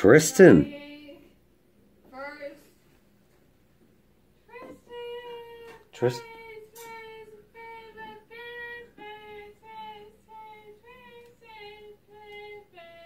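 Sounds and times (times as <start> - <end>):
woman chanting: 0.5 - 1.4, 4.5 - 13.0.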